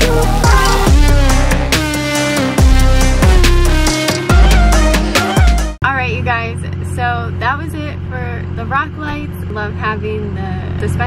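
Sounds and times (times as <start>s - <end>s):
pickup diesel engine drone: 0.0s - 5.1s
woman talking: 5.8s - 11.0s.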